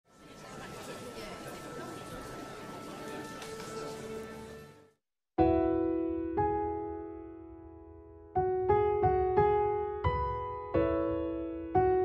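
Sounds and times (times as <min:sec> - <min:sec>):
crowd chattering: 0:00.1 - 0:04.8.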